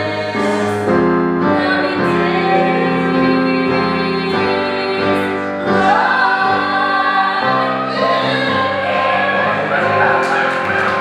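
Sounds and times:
instrumental accompaniment: 0:00.0 - 0:11.0
voices holding sung note: 0:05.7 - 0:11.0
audience applause: 0:08.9 - 0:11.0.

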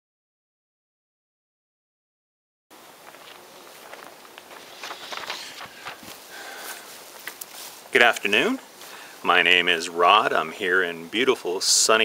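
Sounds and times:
steady outdoor hiss: 0:02.7 - 0:12.0
footsteps through long grass: 0:02.8 - 0:10.3.

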